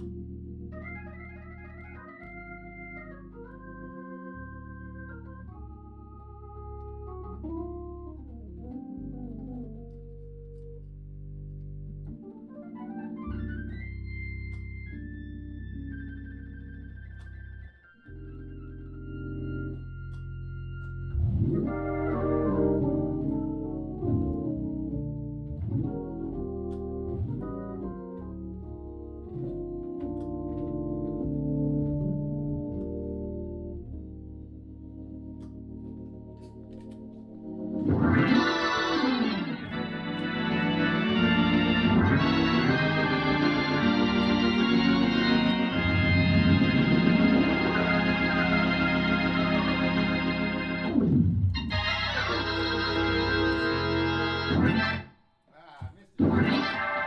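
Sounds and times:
organ chords: 0:00.0 - 0:57.0.

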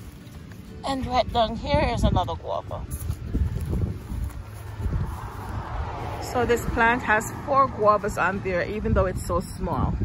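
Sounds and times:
wind buffeting microphone: 0:00.7 - 0:10.0.

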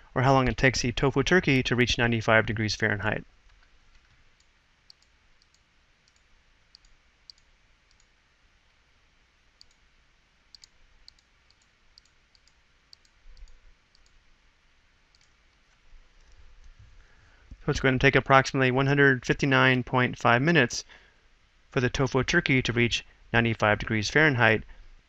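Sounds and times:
faint computer mouse clicks: 0:03.5 - 0:08.1, 0:09.6 - 0:09.8, 0:10.5 - 0:14.2, 0:15.1 - 0:16.8.

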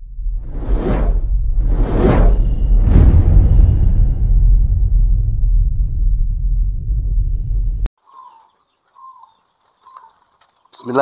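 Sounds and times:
deep whoosh effect: 0:00.0 - 0:07.9
doves cooing: 0:08.0 - 0:10.7.

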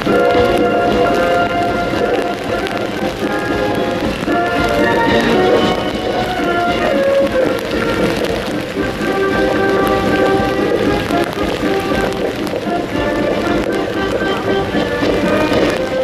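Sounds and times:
heavy rain hiss: 0:00.0 - 0:16.0
military band playing a march: 0:00.0 - 0:16.0.

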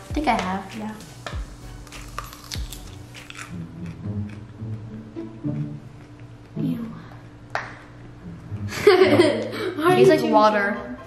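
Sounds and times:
background music: 0:00.0 - 0:11.0
biting crunchy radish: 0:01.8 - 0:04.8.

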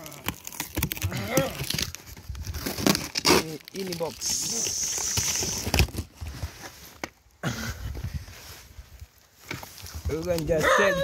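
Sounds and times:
cardboard flaps rustling and scraping: 0:00.2 - 0:07.2
high scraping hiss: 0:04.2 - 0:05.7.

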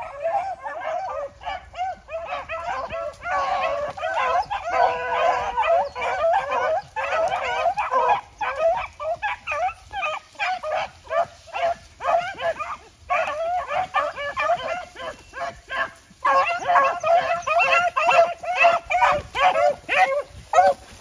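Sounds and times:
dogs baying: 0:00.0 - 0:21.0.

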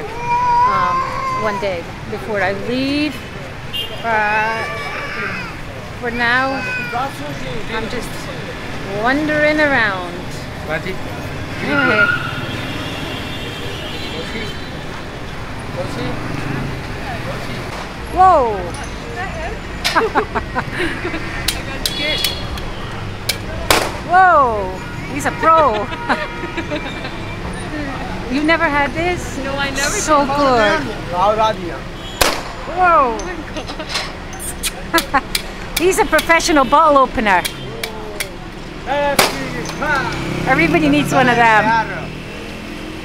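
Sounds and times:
street traffic rumbling: 0:00.0 - 0:43.0.

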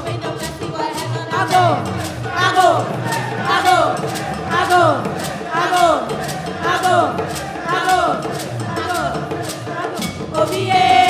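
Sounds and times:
brass band highlife music: 0:00.0 - 0:11.0.

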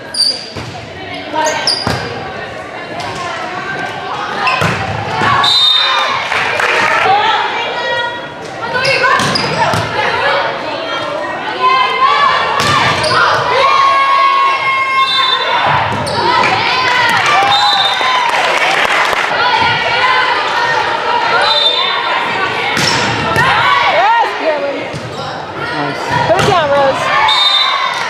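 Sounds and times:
people calling and shouting: 0:19.2 - 0:28.0.

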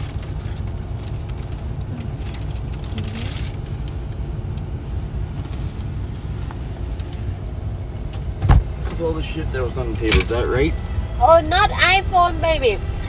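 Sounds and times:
car cabin rumble: 0:00.0 - 0:13.0
loud thump: 0:08.4 - 0:08.8.

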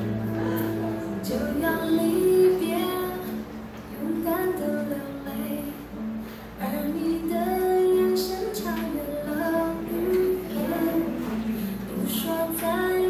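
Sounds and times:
high voice singing: 0:00.0 - 0:13.0
instrumental backing music: 0:00.0 - 0:13.0.

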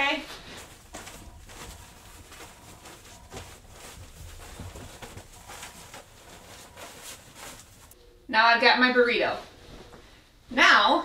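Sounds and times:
rustling of bedding: 0:00.0 - 0:08.0, 0:08.8 - 0:11.0.

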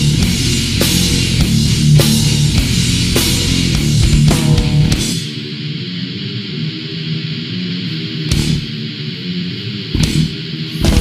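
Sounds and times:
distorted guitar riff: 0:00.0 - 0:11.0.

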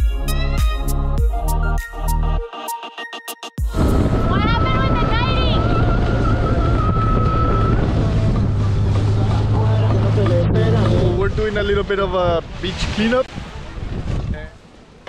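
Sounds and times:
music: 0:00.0 - 0:05.2
water noise: 0:03.7 - 0:15.0
wind: 0:03.7 - 0:15.0
outboard motor running: 0:03.9 - 0:11.5.

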